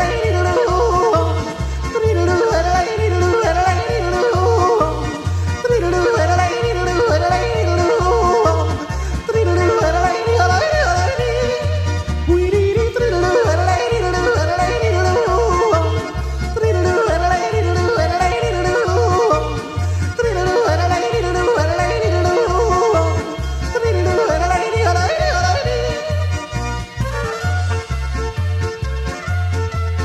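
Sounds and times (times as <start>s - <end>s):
person yodeling: 0.0s - 26.2s
pop backing track: 0.0s - 30.0s.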